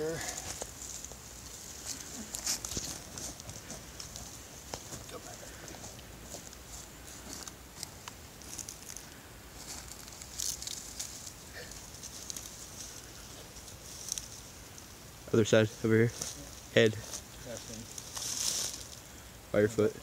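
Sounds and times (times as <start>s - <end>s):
dry leaves rustling and crackling: 0.0s - 19.2s
twigs snapping: 5.9s - 15.0s, 17.1s - 19.0s.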